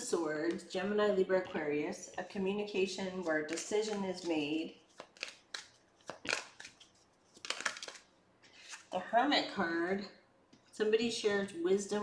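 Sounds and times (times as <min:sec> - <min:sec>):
cards rustling and snapping: 0:03.3 - 0:09.0.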